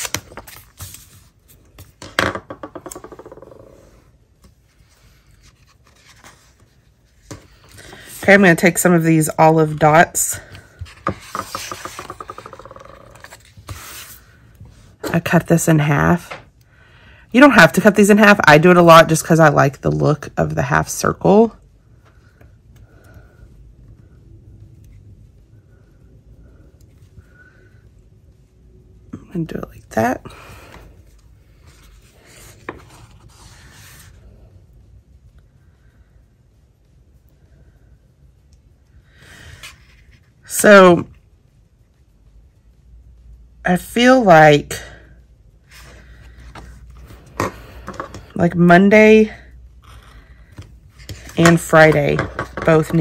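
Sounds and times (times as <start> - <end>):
paper stickers rustling: 0.0 - 2.0, 4.7 - 8.5
soft rub of paper: 0.4 - 1.8, 4.4 - 8.5, 13.1 - 14.9, 31.5 - 34.4.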